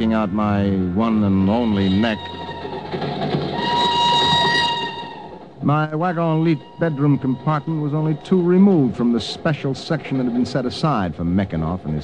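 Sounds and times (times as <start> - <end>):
train rushing noise: 0.0 - 12.0
train whistle chord: 3.6 - 5.4.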